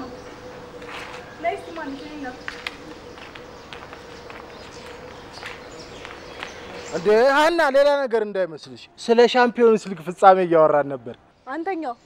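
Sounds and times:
faint steady hum: 0.0 - 7.2
footsteps on brick paving: 0.2 - 7.2.

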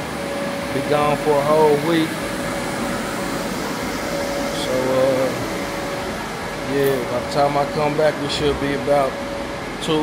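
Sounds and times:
air-handling fans rushing: 0.0 - 10.0.

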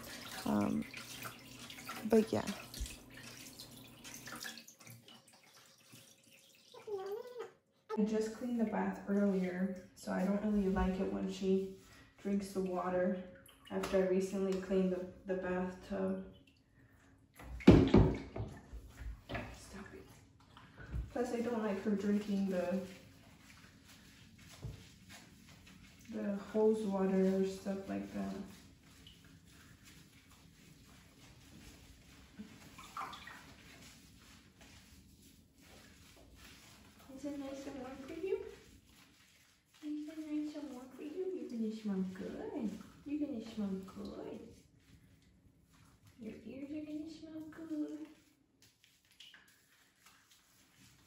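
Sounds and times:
water splashing in bathtub: 0.0 - 51.0.

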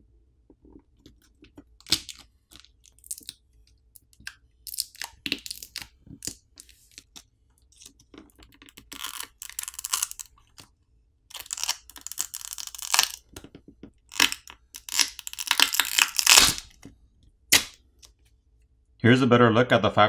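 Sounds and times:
adhesive tearing crackles: 4.2 - 10.7, 11.3 - 16.8, 17.5 - 18.1.

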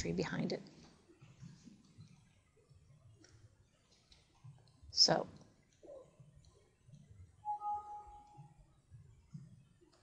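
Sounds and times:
two-note alert chime: 7.5 - 8.4.

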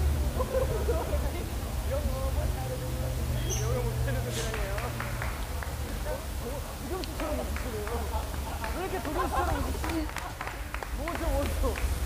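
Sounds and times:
man laughing hard: 0.4 - 1.2.

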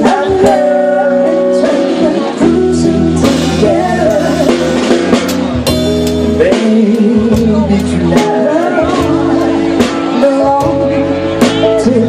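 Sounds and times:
electric guitar: 0.0 - 12.0
live band playing: 0.0 - 12.0
person singing: 0.0 - 12.0.

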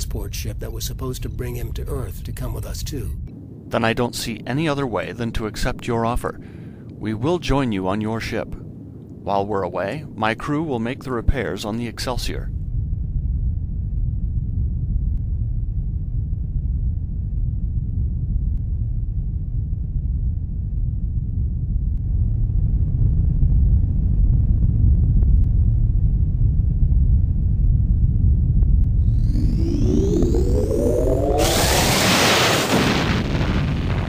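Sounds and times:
deep engine rumble: 12.4 - 34.0.

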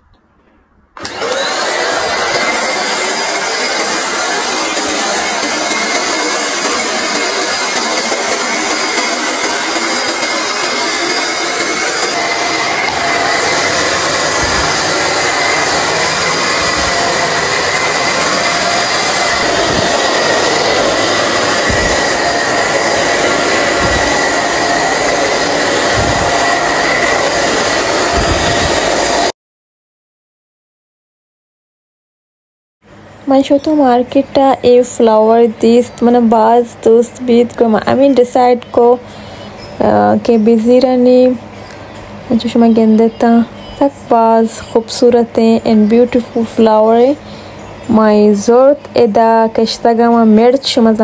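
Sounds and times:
vacuum cleaner whining: 1.0 - 29.4, 33.1 - 51.0.

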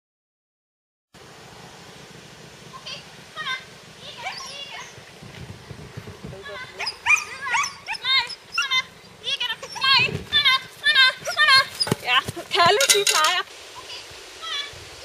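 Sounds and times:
faint outdoor background noise: 1.1 - 15.0
dog barking and yipping: 6.7 - 10.1.

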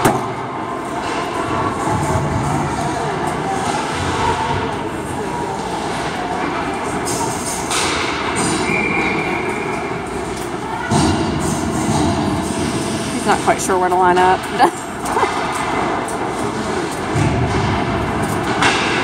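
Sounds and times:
rumbling ice rink ambience: 0.0 - 19.0.

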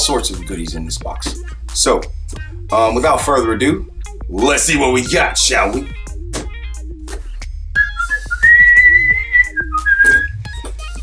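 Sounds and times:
quiet background music: 0.0 - 11.0
person whistling: 7.8 - 10.5.

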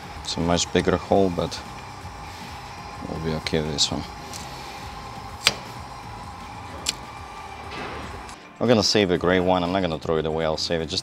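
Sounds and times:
faint steady hum: 0.0 - 8.5.

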